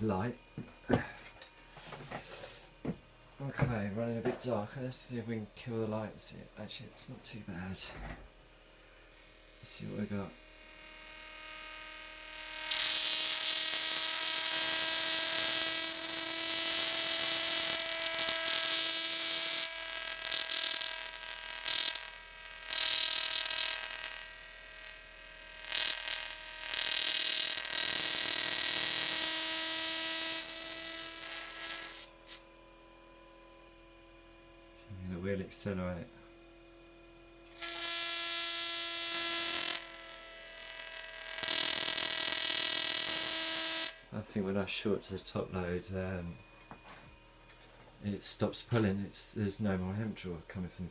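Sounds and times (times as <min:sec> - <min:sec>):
steady buzzing tone: 0:00.0 - 0:50.9
electric sparks hissing: 0:12.5 - 0:32.4, 0:37.5 - 0:44.2.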